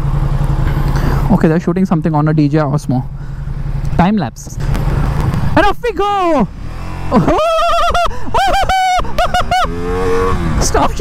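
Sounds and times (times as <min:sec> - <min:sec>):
motorcycle engine revving: 0:00.0 - 0:11.0
rider shouting and whooping: 0:05.6 - 0:06.5, 0:07.1 - 0:11.0.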